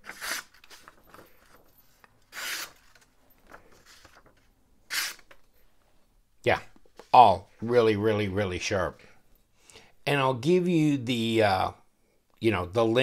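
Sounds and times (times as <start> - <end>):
knife slicing paper: 0.0 - 1.4, 2.3 - 3.0, 4.9 - 5.3.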